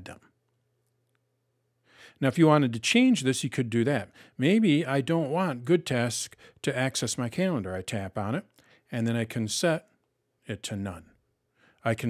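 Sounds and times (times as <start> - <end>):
person speaking: 0.0 - 0.3, 2.2 - 9.9, 10.5 - 11.2
faint room hum: 0.0 - 12.0
intake of breath: 1.8 - 2.2, 4.1 - 4.4, 8.6 - 8.9, 11.5 - 11.8.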